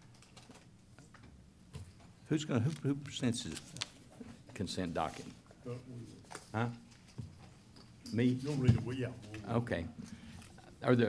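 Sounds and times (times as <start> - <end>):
faint small clicks and rustles: 0.0 - 2.8.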